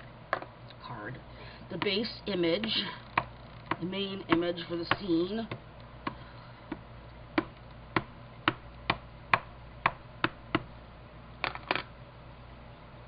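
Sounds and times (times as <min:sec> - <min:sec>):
ink pad tapping on stamp: 0:03.2 - 0:06.8, 0:07.4 - 0:10.7.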